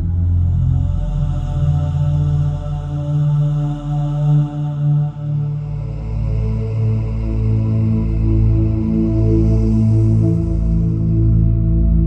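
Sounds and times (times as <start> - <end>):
ambient music with chant-like drone: 0.0 - 12.0.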